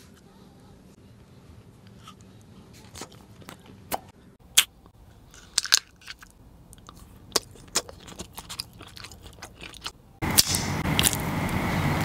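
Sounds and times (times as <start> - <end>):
chewing candy with crunches: 1.9 - 10.0.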